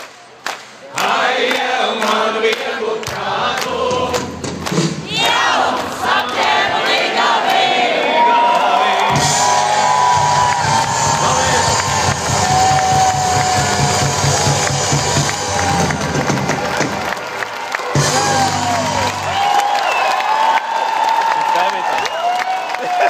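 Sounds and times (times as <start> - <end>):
live concert music with bass drum: 3.1 - 5.3, 9.0 - 19.7
crowd cheering and shouting: 5.0 - 23.0.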